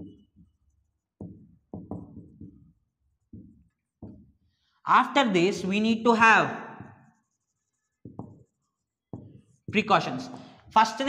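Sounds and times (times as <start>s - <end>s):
marker writing on a whiteboard: 0.0s - 4.4s, 5.0s - 11.0s.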